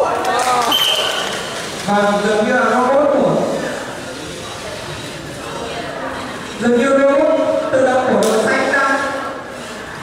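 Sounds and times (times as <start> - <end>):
voices in a large hall: 0.0 - 10.0
high-pitched beep: 0.7 - 1.3.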